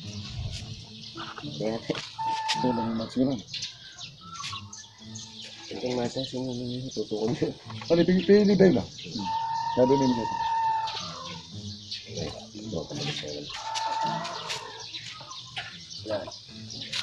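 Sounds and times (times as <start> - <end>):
chickens calling: 0.0 - 17.0.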